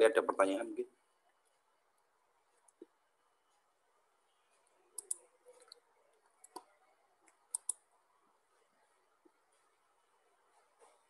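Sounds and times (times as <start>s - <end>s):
computer mouse clicks: 4.6s - 5.8s, 6.4s - 7.9s.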